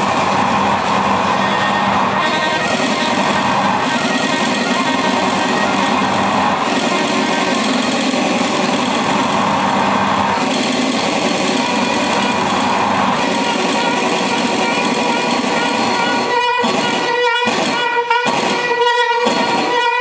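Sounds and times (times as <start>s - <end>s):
buzzing wall of noise: 0.0s - 20.0s.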